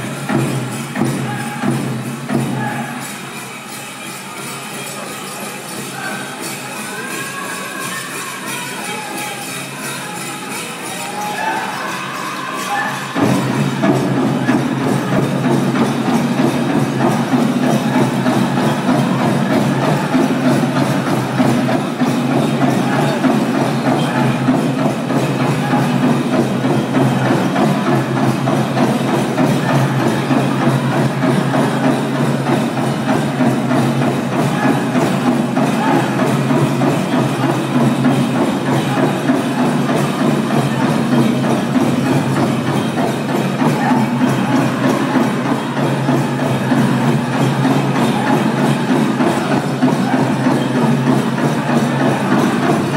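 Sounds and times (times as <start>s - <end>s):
large hand drum beat: 13.1s - 52.9s.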